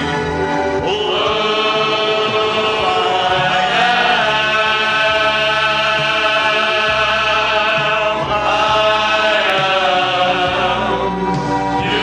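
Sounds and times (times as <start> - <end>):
background music: 0.0 - 12.0
men's choir singing: 0.0 - 12.0.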